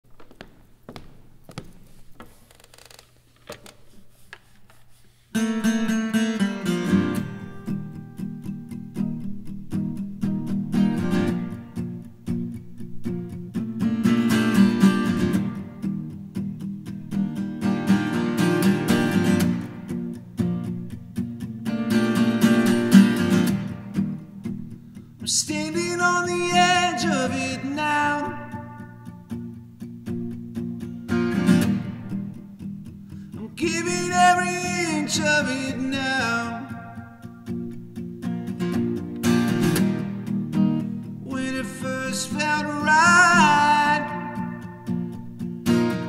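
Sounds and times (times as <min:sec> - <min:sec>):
acoustic guitar strummed: 0:05.3 - 0:46.0.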